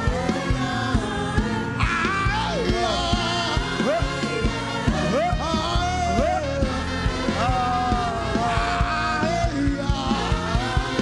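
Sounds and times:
group singing gospel: 0.0 - 11.0
steady drum beat: 0.0 - 11.0.

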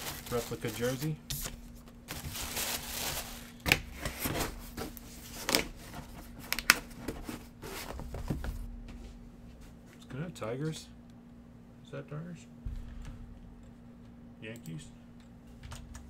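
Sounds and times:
tissue paper rustling: 0.0 - 3.6.

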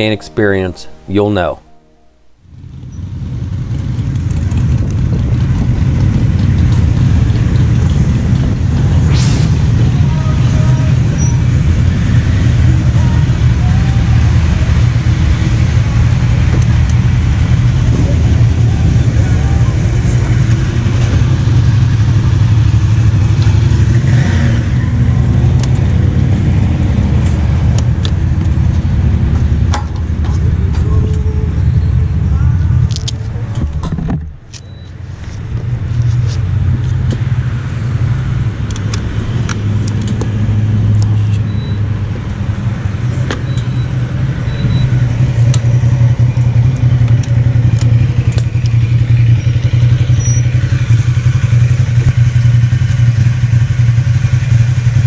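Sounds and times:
motorcycle engines idling: 2.7 - 8.9, 9.9 - 24.0, 24.7 - 33.5, 41.8 - 55.0.

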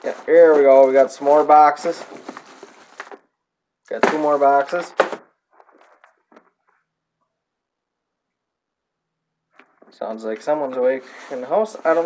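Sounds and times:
plastic rustles and light knocks: 0.0 - 3.3.

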